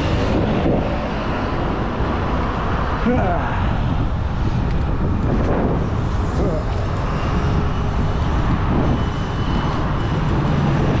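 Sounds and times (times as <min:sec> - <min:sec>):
road and traffic noise: 0:00.0 - 0:11.0
wind rumble on microphone: 0:00.0 - 0:11.0.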